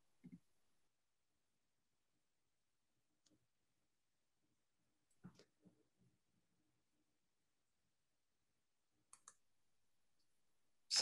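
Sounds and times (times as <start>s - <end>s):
faint quick clicks: 9.1s - 9.4s.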